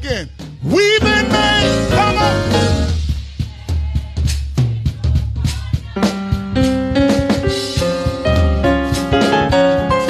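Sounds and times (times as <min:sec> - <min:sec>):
drum kit kick and snare hits: 0:00.0 - 0:10.0
electric bass notes: 0:00.8 - 0:03.0
keyboard chords: 0:00.8 - 0:03.0, 0:06.3 - 0:10.0.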